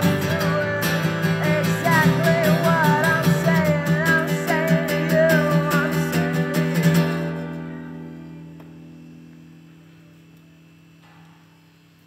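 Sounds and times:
acoustic guitar chord ringing: 0.0 - 11.5
steady low hum: 0.0 - 12.0.

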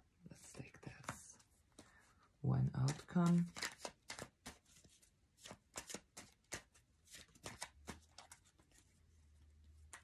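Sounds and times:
cards being shuffled: 0.8 - 2.0, 2.7 - 9.0, 9.8 - 10.0.

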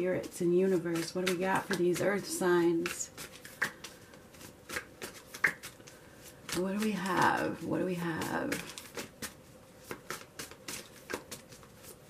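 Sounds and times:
cards shuffling and rustling: 0.6 - 12.0
card slaps: 4.6 - 5.8.

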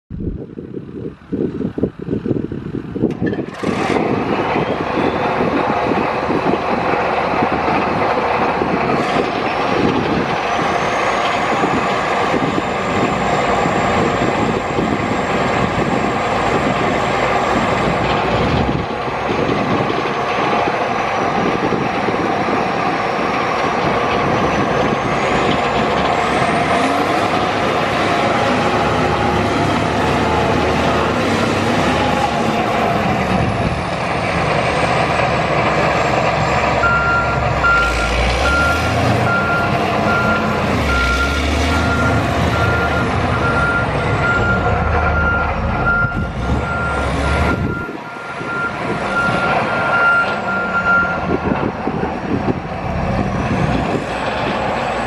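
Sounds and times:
diesel engine revving with whine: 0.8 - 55.0
reversing alarm beeping: 36.8 - 51.3.

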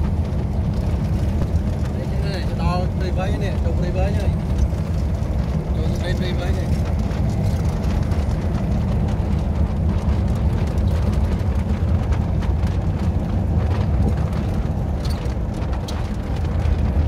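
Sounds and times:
vehicle road and engine noise: 0.0 - 17.0
wind buffeting microphone: 0.0 - 17.0.

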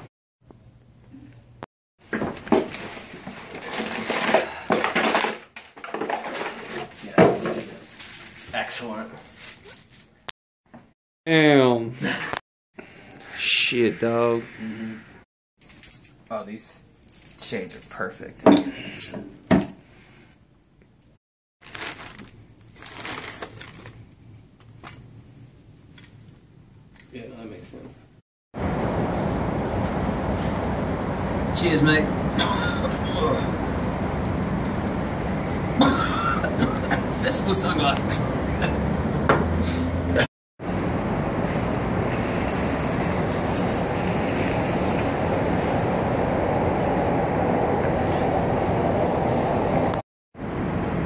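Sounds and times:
plastic packaging crinkling: 21.6 - 24.2
distant city traffic: 28.6 - 51.0.

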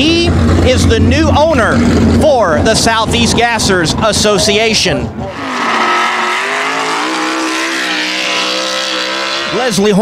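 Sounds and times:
engine at high revs: 0.0 - 10.0.

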